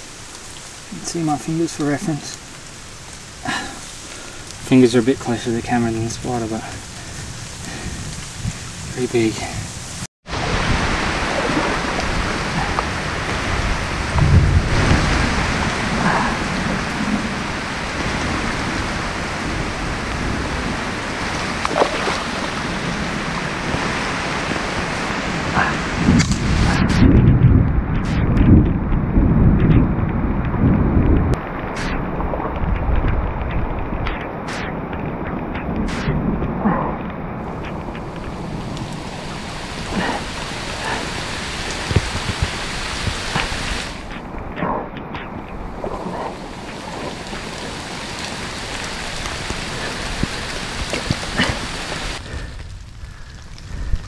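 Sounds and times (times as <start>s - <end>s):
rain falling on mud: 0.0s - 54.0s
heavy low rumbling thumps: 26.0s - 31.4s.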